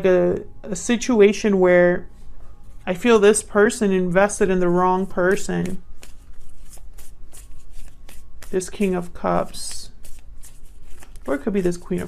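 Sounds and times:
cards being shuffled: 5.2 - 12.0.

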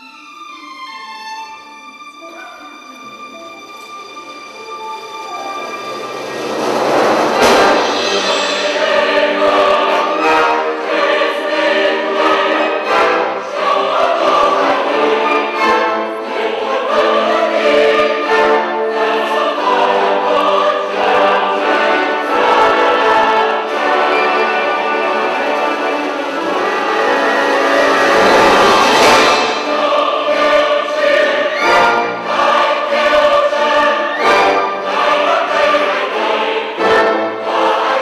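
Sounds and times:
symphony orchestra: 0.0 - 38.0
large choir singing: 4.2 - 38.0
cymbal crash: 6.0 - 10.5, 26.5 - 29.8.

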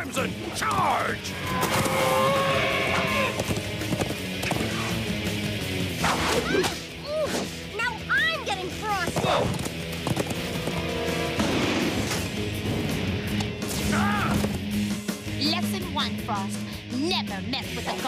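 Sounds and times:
cartoon action music: 0.2 - 5.3
whip cracks: 6.0 - 7.5.

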